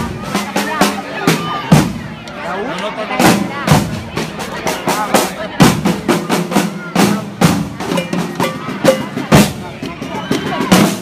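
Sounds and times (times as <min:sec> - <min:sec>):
group of drums beating: 0:00.0 - 0:02.4, 0:03.1 - 0:11.0
people's voices: 0:00.0 - 0:11.0.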